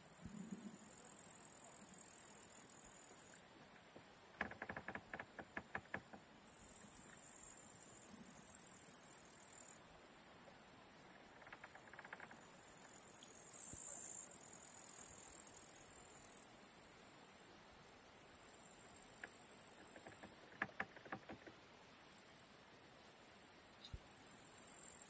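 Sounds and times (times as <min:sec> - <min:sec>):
insects buzzing: 0:04.3 - 0:25.0
quick clicks: 0:19.2 - 0:21.6.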